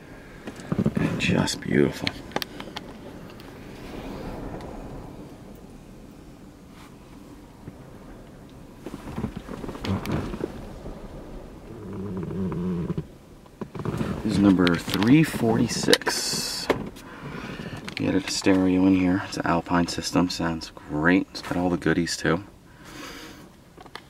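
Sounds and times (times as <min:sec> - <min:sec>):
wind buffeting microphone: 0:00.0 - 0:20.8.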